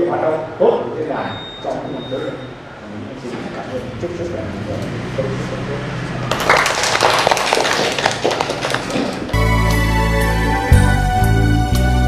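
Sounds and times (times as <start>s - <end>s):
man speaking: 0.0s - 6.0s
people clapping in applause: 6.3s - 9.4s.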